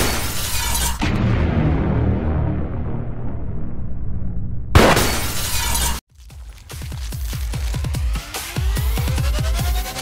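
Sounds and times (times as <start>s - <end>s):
sudden crash with deep boom: 1.0s - 5.2s.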